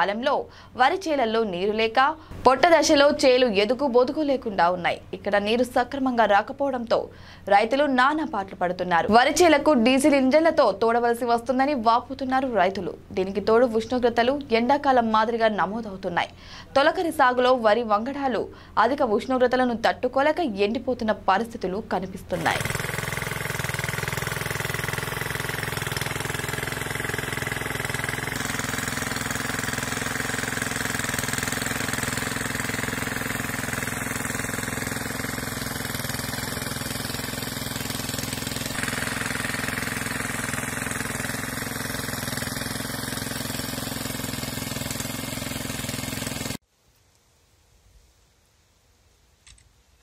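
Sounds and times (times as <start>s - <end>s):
small diesel engine running: 22.3s - 46.6s.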